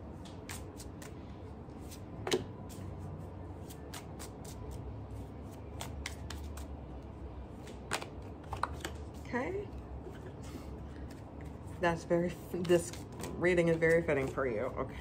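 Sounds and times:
cards being shuffled: 0.2s - 2.8s, 3.6s - 4.8s, 5.4s - 6.8s, 7.5s - 9.2s, 10.9s - 14.4s.

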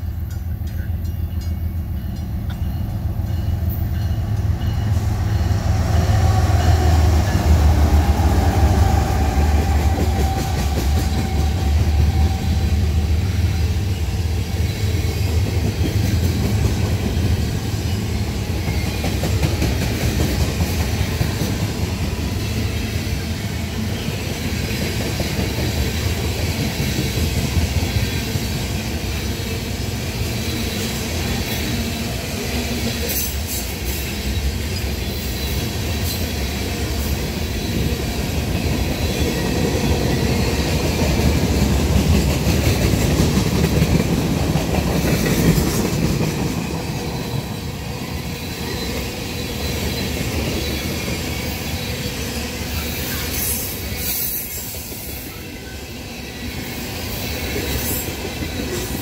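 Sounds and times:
diesel locomotive rumble: 0.0s - 28.2s
train wheels clattering on rails: 0.0s - 55.8s.

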